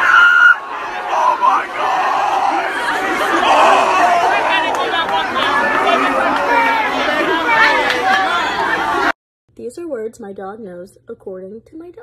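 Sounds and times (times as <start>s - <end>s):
crowd shouting and talking: 0.0s - 9.2s.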